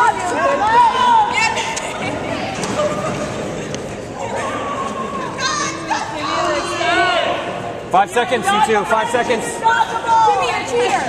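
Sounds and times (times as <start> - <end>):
young women shouting: 0.0 - 1.6, 9.4 - 11.0.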